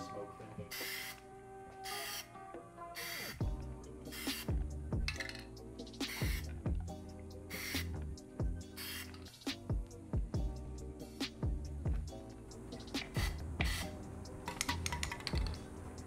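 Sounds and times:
aerosol can spraying: 0:00.7 - 0:01.2, 0:01.8 - 0:02.3, 0:03.0 - 0:03.4, 0:04.1 - 0:04.5, 0:06.0 - 0:06.5, 0:07.5 - 0:07.9, 0:08.7 - 0:09.4, 0:13.0 - 0:13.9
background music with drum beat: 0:02.6 - 0:15.6.

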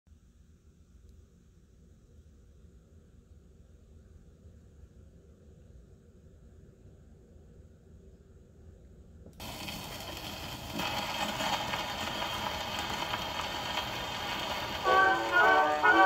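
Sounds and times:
record surface hiss and crackle: 0:00.1 - 0:16.0
orchestral music with brass: 0:14.8 - 0:16.0.

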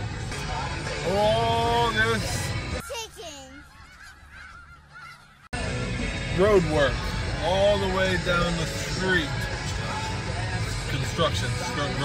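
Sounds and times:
geese honking: 0:00.1 - 0:10.8.

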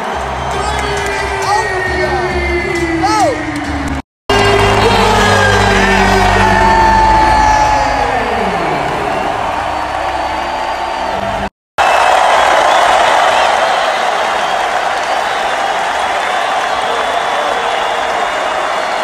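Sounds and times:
arena crowd noise: 0:00.0 - 0:19.0
music over sound system: 0:00.1 - 0:11.5
man yelling: 0:02.9 - 0:03.4.

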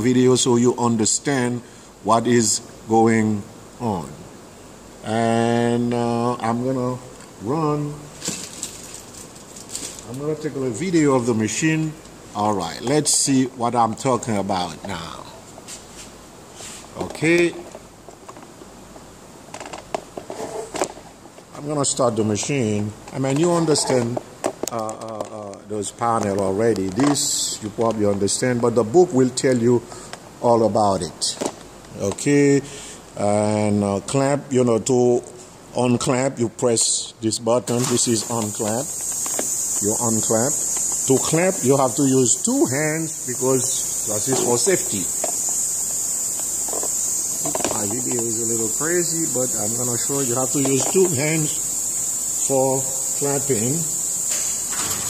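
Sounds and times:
man speaking: 0:00.0 - 0:04.3, 0:05.0 - 0:08.2, 0:10.0 - 0:15.5, 0:16.9 - 0:17.7, 0:21.5 - 0:39.0, 0:39.8 - 0:45.2, 0:47.5 - 0:51.7, 0:52.4 - 0:54.0
steady high-pitched hiss: 0:00.0 - 0:55.0.

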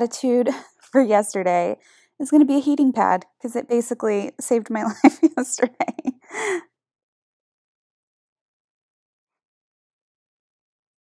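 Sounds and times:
woman's breathy laugh exhale: 0:06.2 - 0:06.6.

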